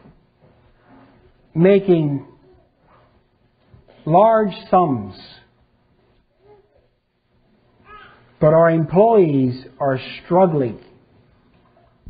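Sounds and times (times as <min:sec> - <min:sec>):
man's voice: 0:04.1 - 0:05.4, 0:08.4 - 0:10.9.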